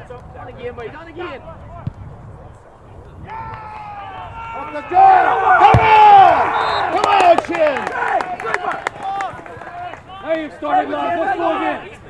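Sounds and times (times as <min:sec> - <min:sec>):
people shouting: 0:03.2 - 0:08.3.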